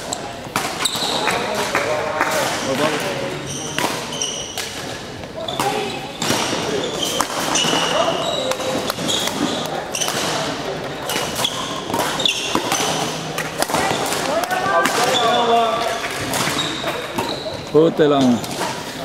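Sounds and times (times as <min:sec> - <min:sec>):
court shoes squeaking: 0:00.0 - 0:19.0
racket striking shuttlecock: 0:05.6 - 0:15.2.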